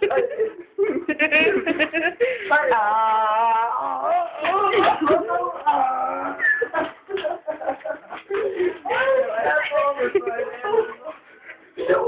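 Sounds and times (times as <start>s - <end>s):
person making wavering vocal noises: 2.8s - 6.6s.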